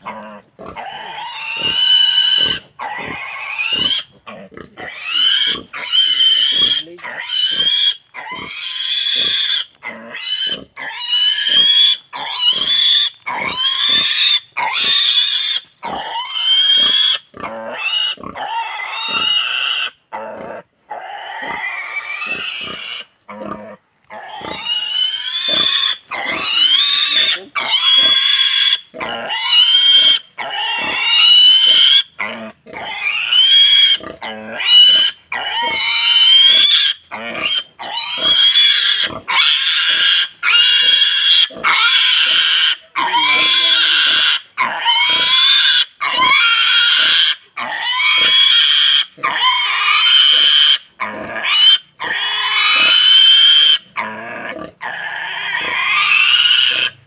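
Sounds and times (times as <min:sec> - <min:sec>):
pig squealing: 0:00.0 - 0:57.0.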